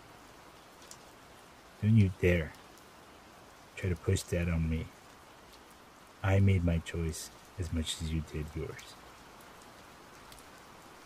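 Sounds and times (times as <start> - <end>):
faint rain-like background noise: 0.0 - 11.0.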